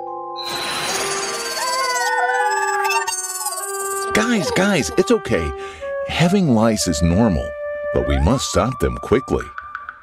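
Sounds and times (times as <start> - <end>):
background music: 0.0 - 10.0
cartoon character wailing: 1.4 - 5.1.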